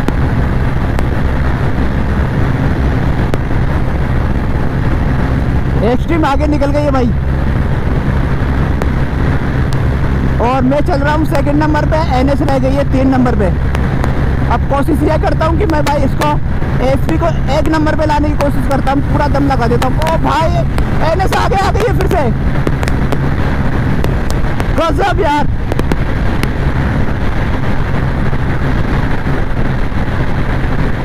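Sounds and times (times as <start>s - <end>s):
motorcycle engine at full throttle: 0.0s - 31.0s
wind rush on microphone: 0.0s - 31.0s.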